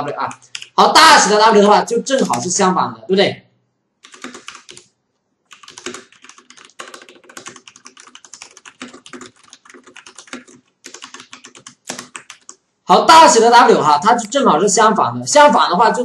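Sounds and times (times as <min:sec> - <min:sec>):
typing on computer keyboard: 0:00.3 - 0:00.8, 0:04.0 - 0:04.9, 0:05.5 - 0:12.6.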